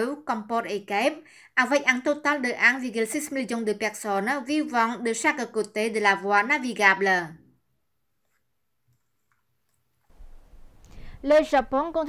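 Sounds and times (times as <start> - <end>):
low steady hiss: 10.0 - 12.0.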